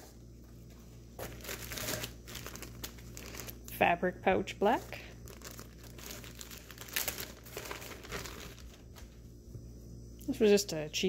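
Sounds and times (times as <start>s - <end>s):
plastic bag crinkling: 1.2s - 3.8s, 4.8s - 9.2s.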